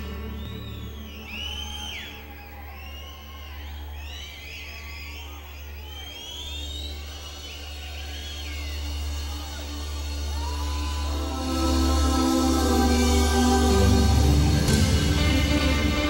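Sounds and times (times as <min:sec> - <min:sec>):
live rock band playing: 0:13.7 - 0:16.0.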